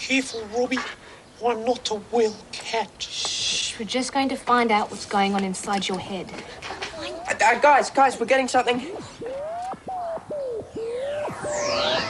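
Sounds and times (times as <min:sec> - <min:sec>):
warbling electronic tone: 0:08.7 - 0:12.0.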